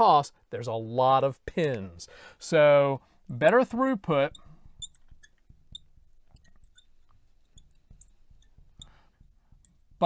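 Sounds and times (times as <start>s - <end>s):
faint scratching strokes: 3.0s - 10.0s
marker squeaking on glass: 3.0s - 10.0s.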